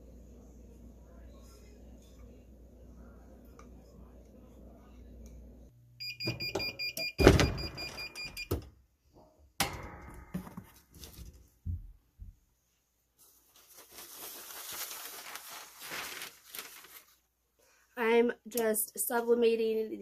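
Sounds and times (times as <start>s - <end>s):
heat press beeping: 6.0s - 8.6s
paper sheets rustling: 13.2s - 17.3s.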